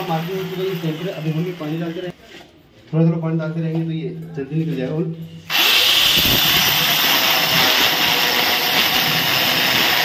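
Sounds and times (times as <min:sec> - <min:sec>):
angle grinder cutting stone: 0:05.5 - 0:10.0.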